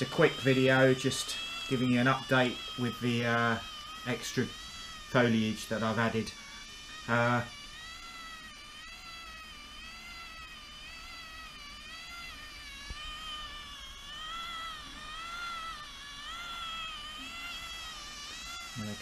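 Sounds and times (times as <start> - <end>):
motor and cogs whining: 0.0 - 19.0.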